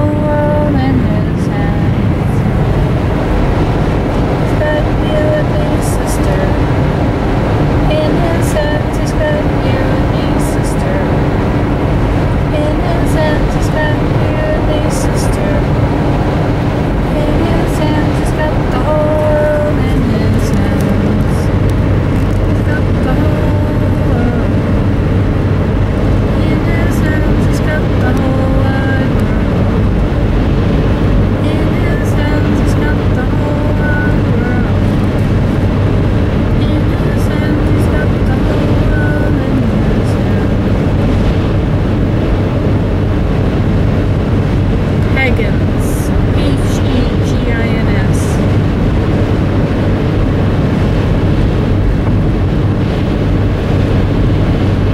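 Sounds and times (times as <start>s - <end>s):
car cabin road noise: 0.0s - 54.9s.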